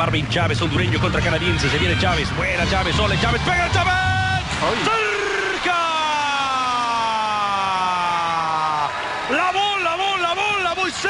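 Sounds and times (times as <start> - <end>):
commentator's long shout: 1.3 - 11.0.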